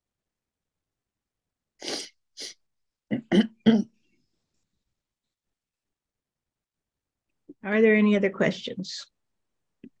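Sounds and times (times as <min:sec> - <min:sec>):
person clearing throat: 0:03.1 - 0:04.0.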